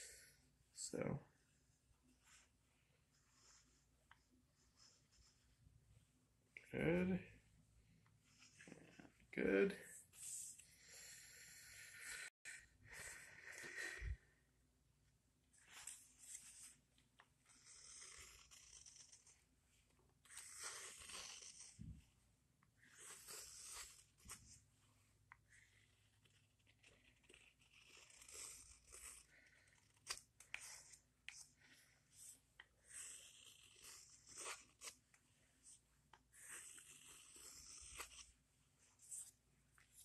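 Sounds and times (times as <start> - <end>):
knife carving wood: 17.4 - 21.9, 22.8 - 24.4, 25.4 - 31.5, 32.2 - 38.4.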